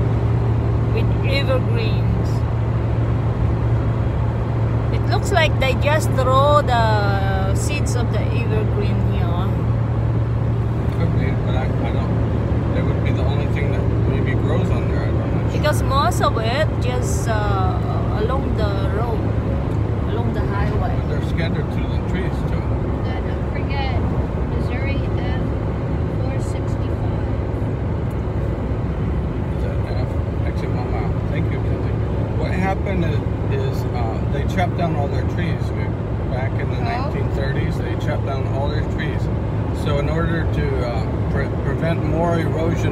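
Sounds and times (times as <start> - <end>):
car cabin drone at speed: 0.0 - 42.9
tyre and road noise: 0.0 - 42.9.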